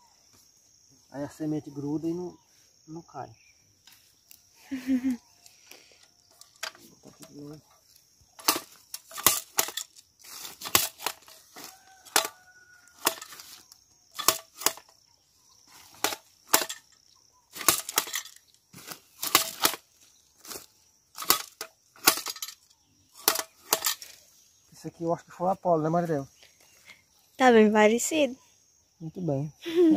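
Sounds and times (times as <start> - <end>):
high insect buzz: 0.0 - 29.9
planter stabbing into soil: 8.4 - 14.9, 15.8 - 19.9.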